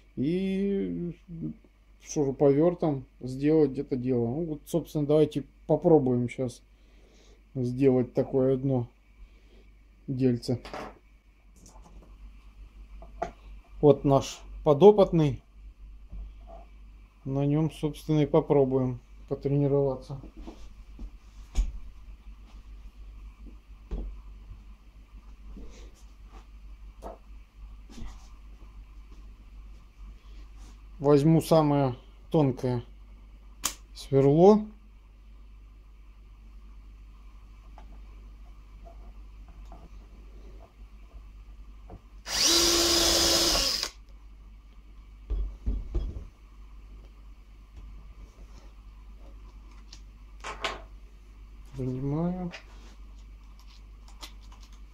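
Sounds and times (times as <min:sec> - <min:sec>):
drill boring into wood: 0:42.2 - 0:44.0.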